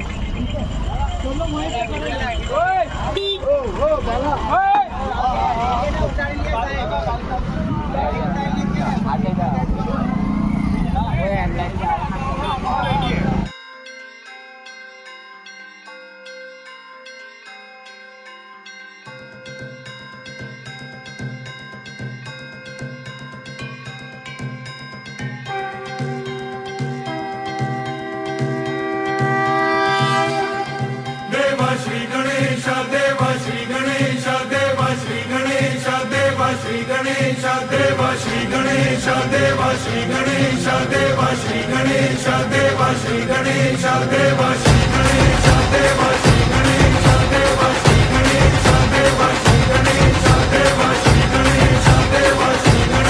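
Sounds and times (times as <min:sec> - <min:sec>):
motorcycle and vehicle engines: 0:00.0 - 0:13.5
voices talking and calling: 0:00.0 - 0:13.5
low drone: 0:05.6 - 0:13.5
devotional chanting: 0:29.9 - 0:53.0.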